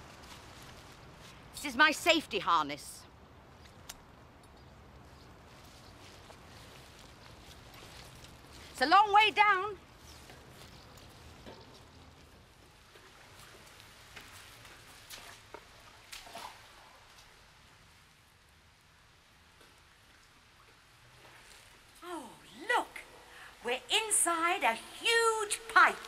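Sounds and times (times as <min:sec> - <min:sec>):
water dripping: 0:06.0 - 0:22.1.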